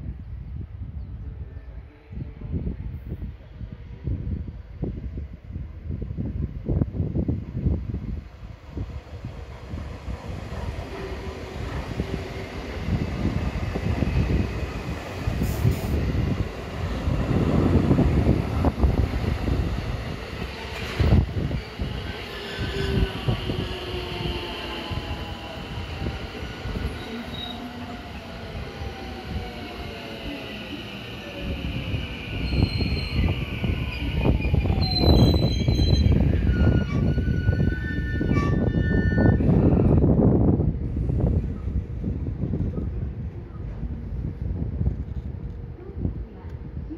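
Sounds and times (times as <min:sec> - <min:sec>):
train wheels rumbling over rails: 0:08.2 - 0:37.8.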